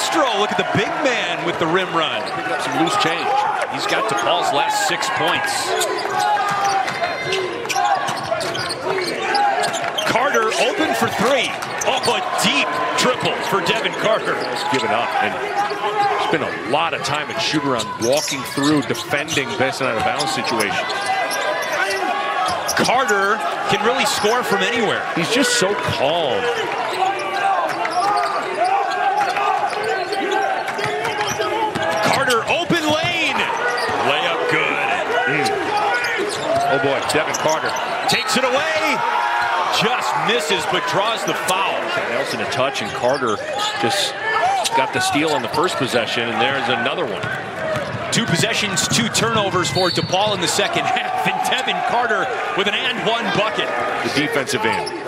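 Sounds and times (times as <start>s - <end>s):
crowd background: 0.0s - 55.0s
voices in arena: 0.0s - 55.0s
sneaker squeaks: 5.7s - 10.1s, 13.7s - 16.3s, 17.7s - 22.9s, 26.8s - 34.2s, 35.4s - 38.0s, 49.8s - 50.4s, 54.6s - 55.0s.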